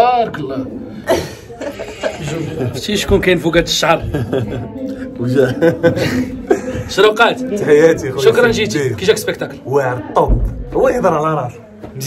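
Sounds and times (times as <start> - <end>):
men talking and chuckling: 1.0 - 8.8.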